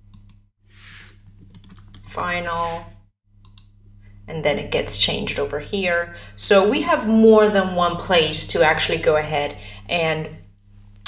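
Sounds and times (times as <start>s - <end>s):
keyboard typing clicks: 1.0s - 2.3s, 3.4s - 3.7s.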